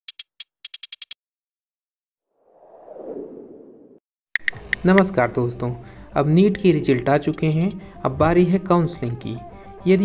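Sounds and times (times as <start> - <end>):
whoosh: 2.4 - 4.0.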